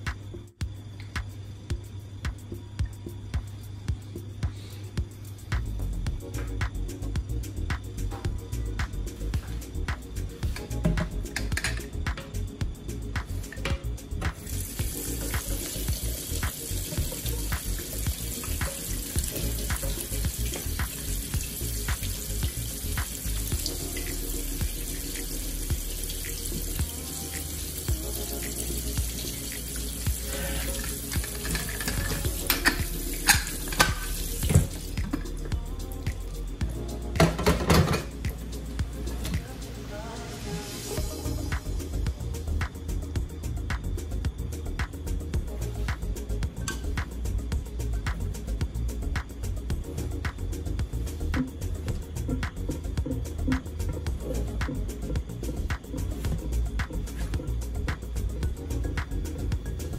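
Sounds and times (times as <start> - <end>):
tap water running onto metal lid: 14.4 - 35.3.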